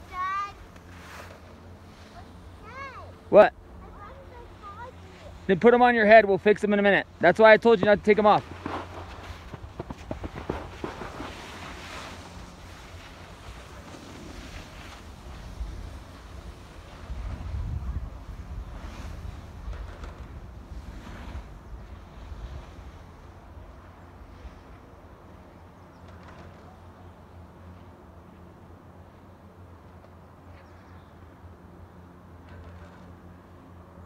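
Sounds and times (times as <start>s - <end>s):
wind buffeting microphone: 7.8s - 25.2s.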